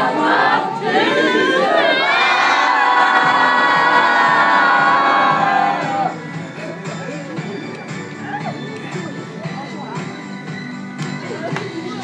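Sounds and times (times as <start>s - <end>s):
young voices singing together: 0.0s - 6.1s.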